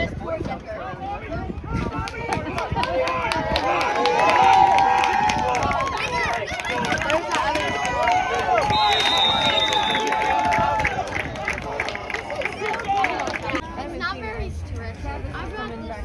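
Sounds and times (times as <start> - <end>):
crowd shouting and cheering: 0.0 - 13.9
high whistle blast: 8.7 - 10.1.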